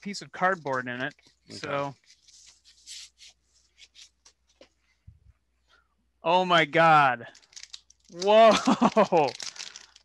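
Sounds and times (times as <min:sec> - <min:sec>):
paper and cardboard rustling: 0:00.0 - 0:05.0, 0:07.3 - 0:10.0.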